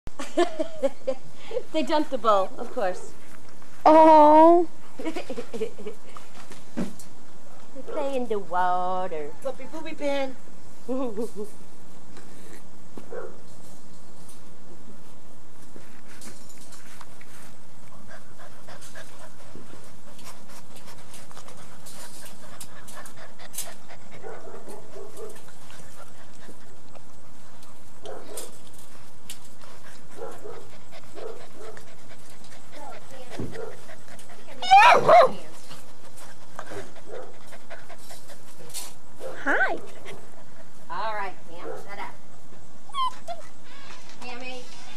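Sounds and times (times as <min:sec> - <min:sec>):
puppies whimpering and yipping: 0:34.5 - 0:35.4, 0:42.8 - 0:44.0
puppy yelps: 0:34.6 - 0:35.4, 0:42.8 - 0:44.0.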